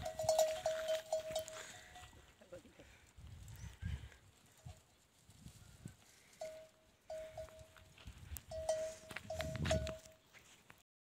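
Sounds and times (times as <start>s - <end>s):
camels crunching thorn brush: 0.0s - 2.4s, 3.6s - 10.7s.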